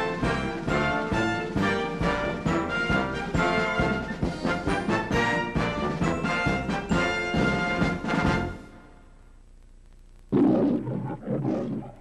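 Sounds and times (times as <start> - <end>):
lion roaring: 10.3 - 12.0.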